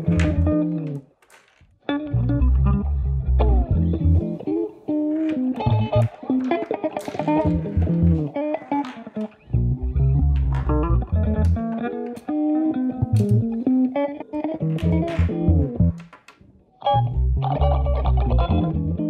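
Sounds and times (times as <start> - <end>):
electric guitar plucked melody: 0.0 - 1.1, 1.8 - 19.0.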